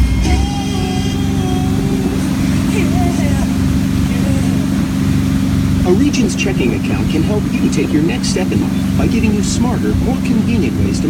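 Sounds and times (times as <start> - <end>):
boat engine droning: 0.0 - 11.0
water rushing from wake: 0.0 - 11.0.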